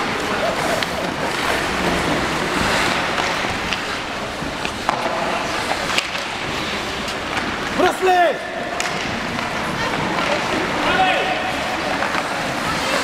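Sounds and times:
crowd noise: 0.0s - 13.0s
hockey sticks and puck clacking: 0.0s - 13.0s
skates scraping ice: 0.0s - 13.0s.

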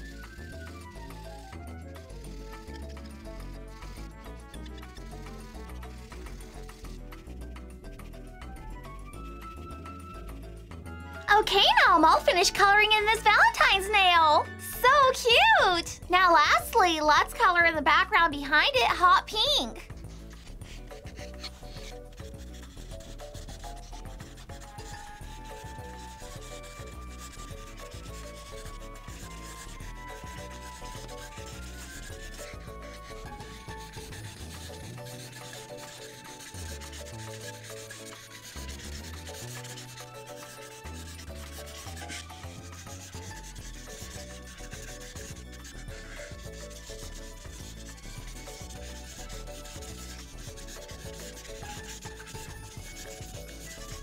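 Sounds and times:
light background music: 0.0s - 54.0s
marker scrubbing on paper: 0.0s - 54.0s.

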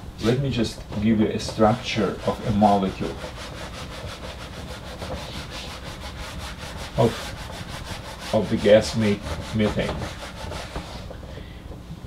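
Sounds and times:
eraser scrubbing a whiteboard: 0.2s - 11.2s.

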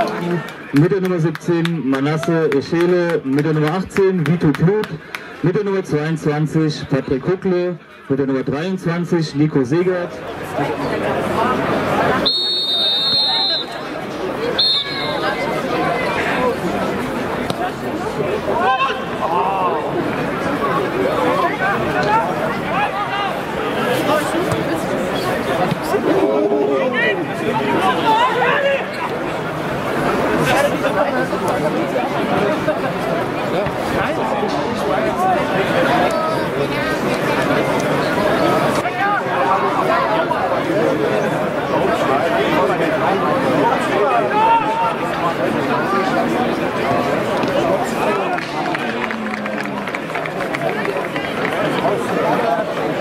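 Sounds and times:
spectators chattering: 0.0s - 53.0s
players calling out: 10.0s - 52.8s
referee's whistle blasts: 12.2s - 13.8s, 14.5s - 15.4s.

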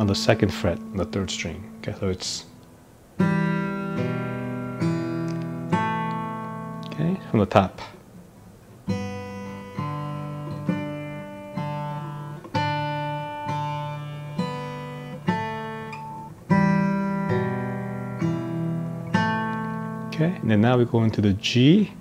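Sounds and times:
fingerpicked acoustic guitar: 0.0s - 22.0s.

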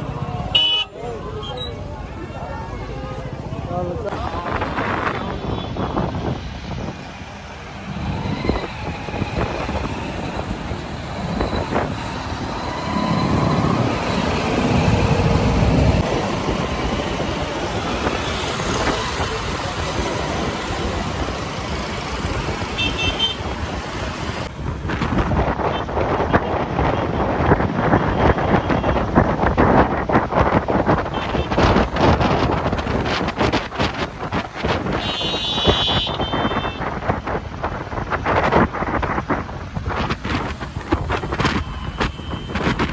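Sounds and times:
highway traffic: 0.0s - 42.9s.

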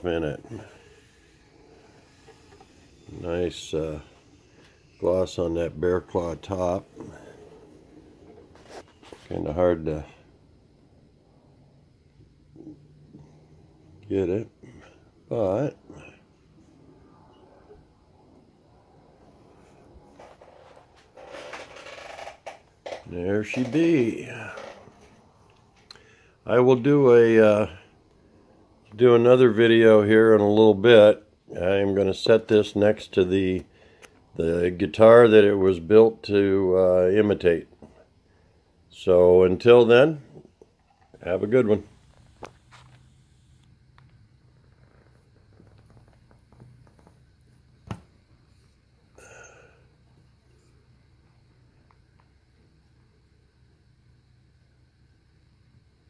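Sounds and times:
faint low hum: 0.0s - 56.0s.

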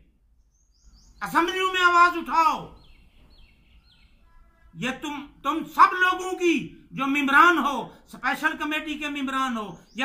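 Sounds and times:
bird chirping: 0.0s - 10.0s
man's voice: 4.8s - 10.0s.

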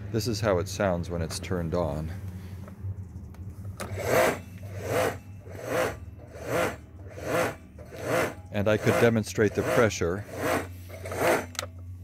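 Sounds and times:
pressure washer humming and surging: 3.8s - 11.8s.

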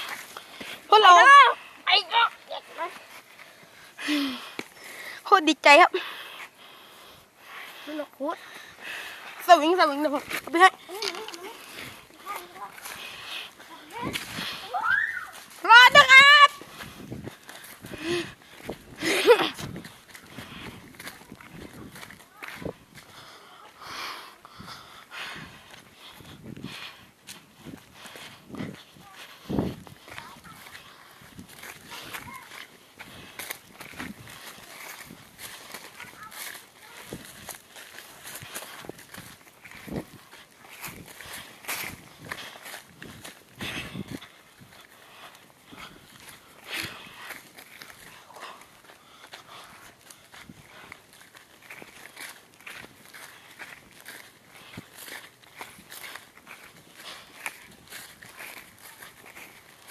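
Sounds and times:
footsteps in grass: 0.0s - 59.9s
rustling of undergrowth: 0.0s - 59.9s.

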